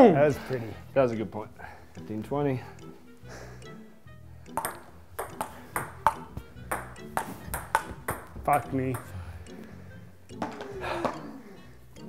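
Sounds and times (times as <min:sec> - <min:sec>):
table tennis ball clicking: 0:04.5 - 0:09.1.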